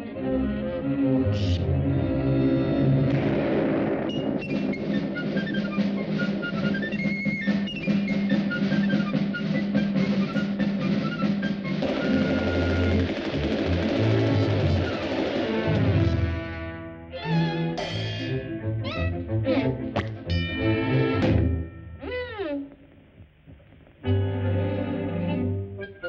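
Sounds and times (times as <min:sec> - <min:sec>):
orchestral cartoon music: 0:00.0 - 0:03.6, 0:04.2 - 0:22.1, 0:24.0 - 0:26.0
snare drum roll: 0:03.1 - 0:16.6.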